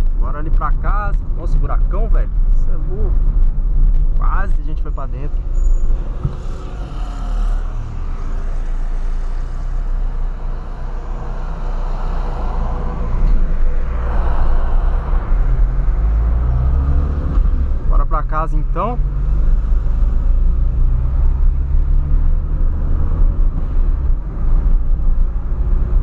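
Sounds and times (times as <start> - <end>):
road noise: 0.0 - 26.0.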